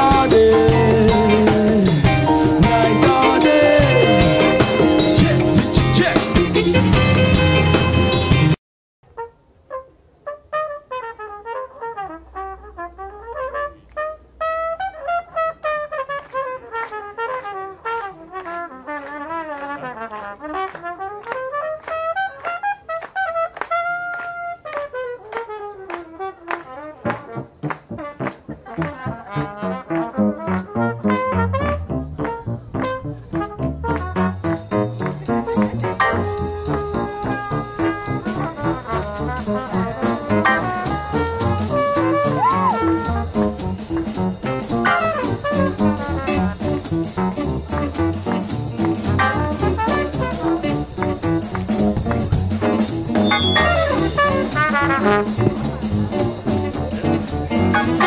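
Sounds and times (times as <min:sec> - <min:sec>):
bass: 0:00.0 - 0:08.6, 0:27.0 - 0:58.0
jazz trumpet solo: 0:00.0 - 0:58.0
cymbals: 0:34.0 - 0:58.0.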